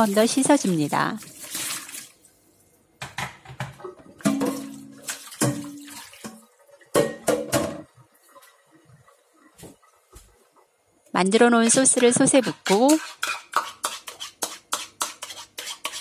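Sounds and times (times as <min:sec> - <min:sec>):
water splashing into metal pot: 0:00.0 - 0:02.3, 0:03.7 - 0:08.7
pot clunking against sink: 0:03.0 - 0:07.9.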